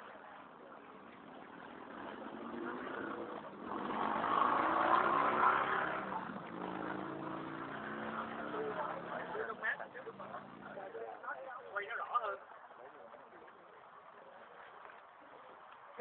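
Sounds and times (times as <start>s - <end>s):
motor vehicle passing: 1.0s - 11.0s.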